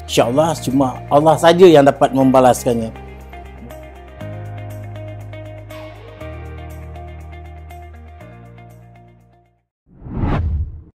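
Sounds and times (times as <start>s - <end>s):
soft background music: 0.0s - 9.2s
whoosh sound effect: 9.9s - 10.9s.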